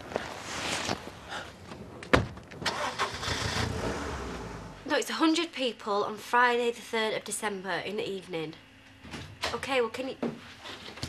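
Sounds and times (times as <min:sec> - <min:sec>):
car engine starting and running: 0:01.8 - 0:04.8.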